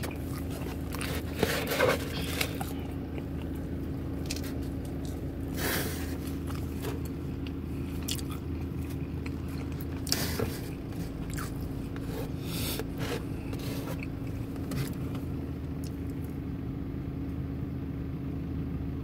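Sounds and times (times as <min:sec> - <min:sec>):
person chewing pizza: 0:00.0 - 0:16.4
steady low hum: 0:00.0 - 0:19.0.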